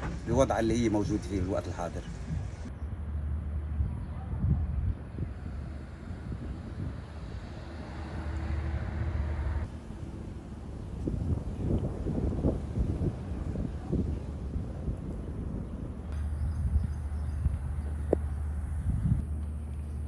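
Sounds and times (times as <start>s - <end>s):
steady low rumble: 0.0s - 20.0s
wind buffeting microphone: 0.0s - 20.0s.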